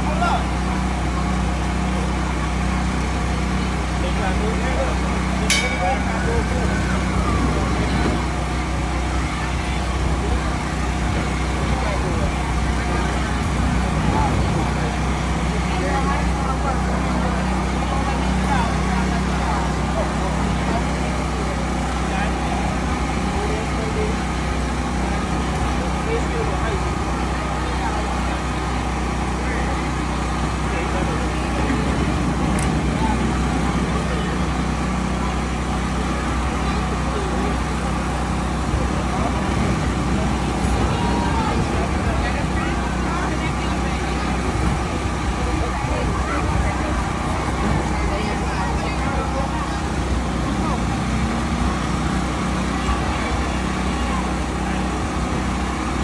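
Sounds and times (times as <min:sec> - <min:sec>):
low motor drone: 0:00.0 - 0:56.0
people chattering: 0:00.0 - 0:56.0.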